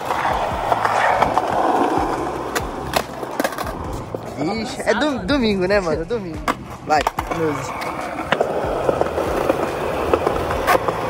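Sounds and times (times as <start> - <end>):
skateboard clacking on ground: 0.0 - 4.6, 6.3 - 11.0
skateboard wheels rumbling: 0.0 - 5.8, 6.4 - 11.0.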